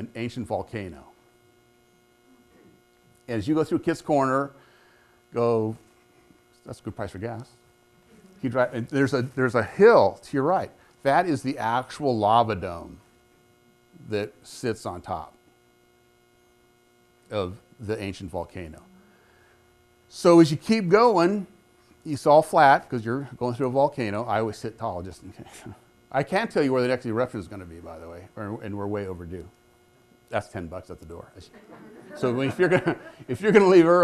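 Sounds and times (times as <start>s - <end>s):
man speaking: 0.0s - 1.2s, 3.3s - 4.5s, 5.4s - 5.8s, 6.6s - 7.6s, 8.4s - 13.0s, 14.0s - 15.4s, 17.3s - 18.9s, 20.1s - 29.5s, 30.3s - 31.5s, 32.1s - 34.0s
faint electrical hum: 0.0s - 34.0s.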